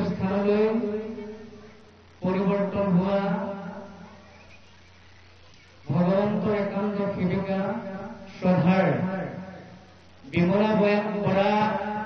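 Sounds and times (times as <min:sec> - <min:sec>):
man reciting: 0:00.0 - 0:01.2, 0:02.2 - 0:03.6, 0:05.9 - 0:12.0
faint low hum: 0:00.0 - 0:12.0.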